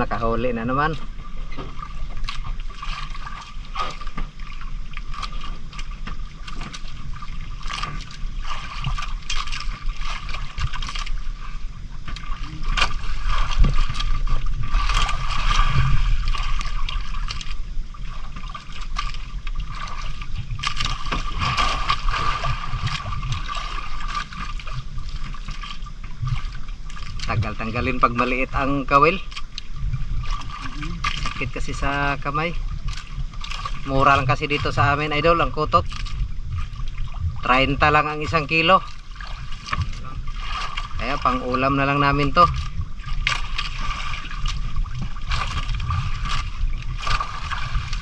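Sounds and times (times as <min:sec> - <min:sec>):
faint steady hum: 0:00.0 - 0:48.0
water lapping against boat hull: 0:00.0 - 0:48.0
sharp knocks and splashes: 0:00.7 - 0:48.0.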